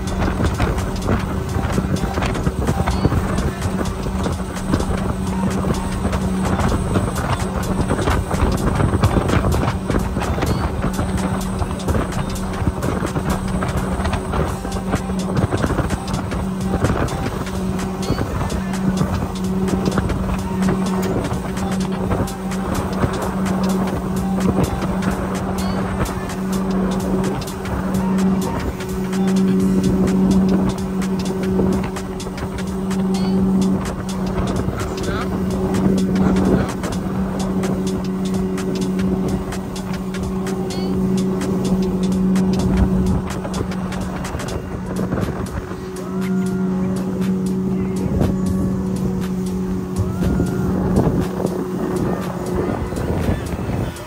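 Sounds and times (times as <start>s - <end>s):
boat wake rushing: 0.0s - 54.0s
outboard motor running: 0.0s - 54.0s
wind noise: 0.0s - 54.0s.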